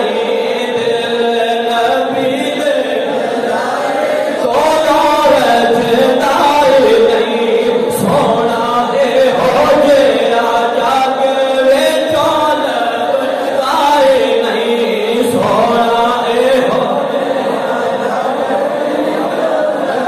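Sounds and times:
man chanting into microphone: 0.0s - 20.0s.

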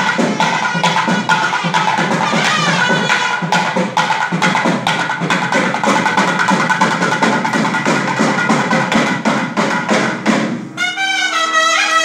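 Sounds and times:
barrel drum fast rhythm: 0.0s - 10.8s
double-reed wind instrument melody: 10.8s - 12.0s.

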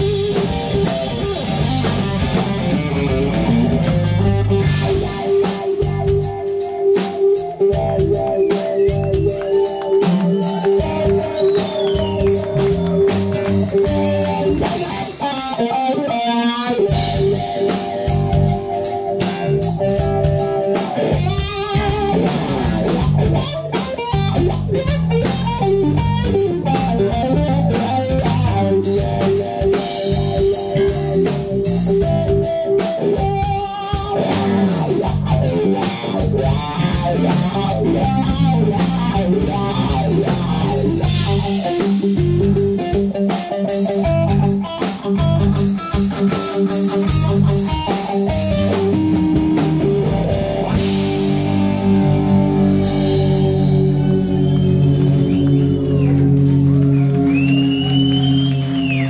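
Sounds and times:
bass guitar: 0.0s - 59.0s
drum kit: 0.0s - 59.0s
electric guitar solo: 0.0s - 59.0s.

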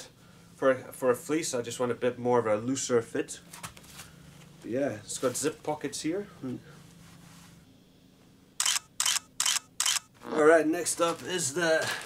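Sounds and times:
camera shutter clicks: 8.6s - 10.1s.

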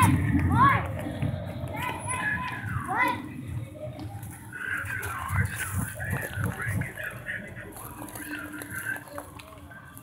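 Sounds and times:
murmur of background chatter: 0.0s - 10.0s.

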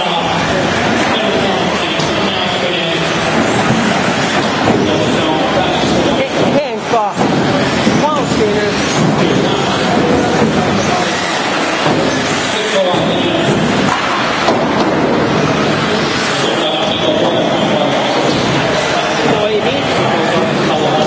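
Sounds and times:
electric motors whining: 0.0s - 21.0s
indistinct chatter: 0.0s - 21.0s.

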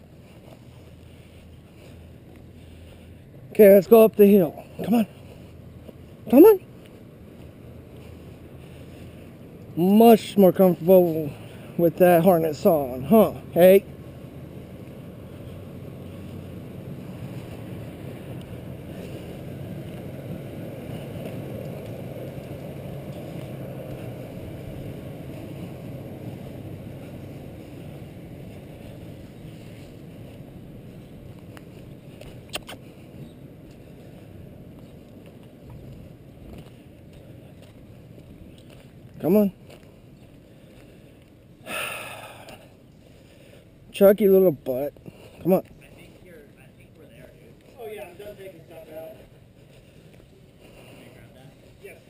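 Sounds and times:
low rumbling outdoor noise: 0.0s - 52.0s.

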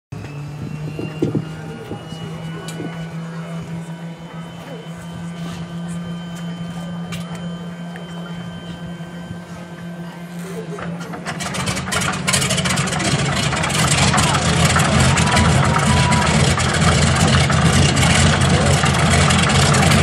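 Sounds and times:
steady mechanical hum: 0.1s - 20.0s
people talking: 0.3s - 11.4s, 12.3s - 20.0s.

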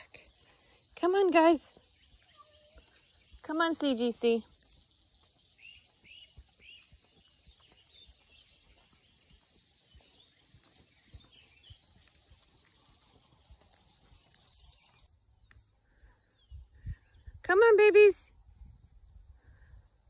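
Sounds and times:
distant bird chirps: 0.0s - 17.4s.

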